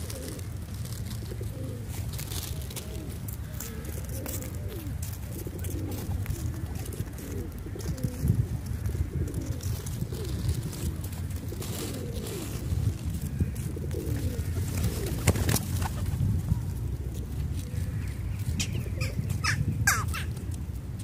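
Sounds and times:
pigeons cooing: 0:00.0 - 0:20.8.

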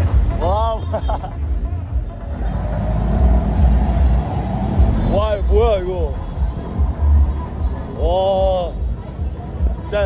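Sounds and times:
low street noise rumble: 0:00.0 - 0:10.0
car engine running: 0:02.1 - 0:08.0.

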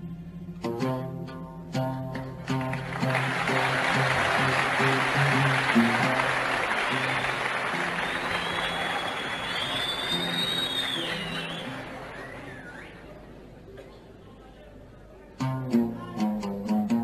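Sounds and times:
oud plucked notes: 0:00.0 - 0:09.2, 0:15.4 - 0:17.0
crowd noise: 0:02.3 - 0:17.0
thin high whistle: 0:06.9 - 0:13.2.

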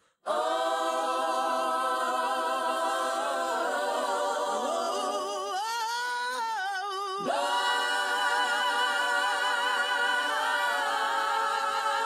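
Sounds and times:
female singers in harmony: 0:07.2 - 0:12.0.

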